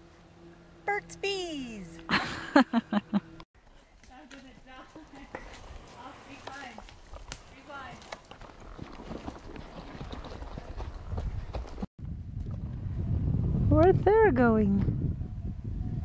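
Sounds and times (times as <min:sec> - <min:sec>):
horse hooves clip-clopping on dirt: 0:03.6 - 0:12.8.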